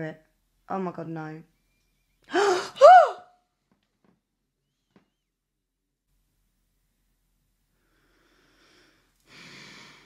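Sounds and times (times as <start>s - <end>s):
woman gasping: 2.3s - 3.2s
woman crying out: 2.3s - 3.3s.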